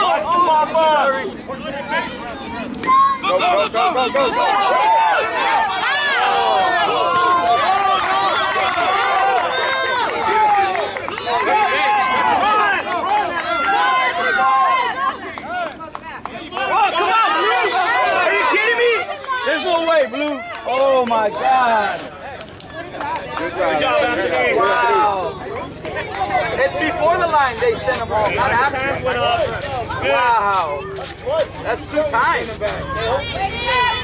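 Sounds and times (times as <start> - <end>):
spectators shouting and cheering: 0.0 - 34.0.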